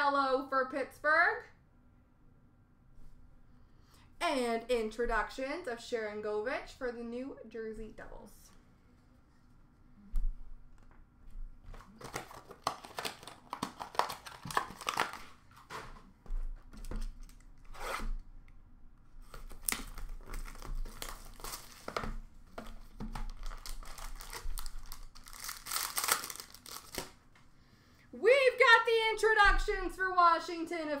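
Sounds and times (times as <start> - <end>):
clicks of packaging and cards: 11.7 - 15.8
plastic wrapping crinkling: 11.7 - 16.0, 19.2 - 27.2.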